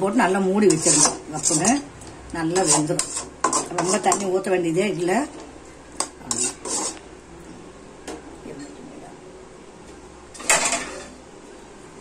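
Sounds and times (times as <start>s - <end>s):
ladle scraping metal pan: 0.6s - 4.4s, 6.0s - 7.0s, 10.4s - 11.2s.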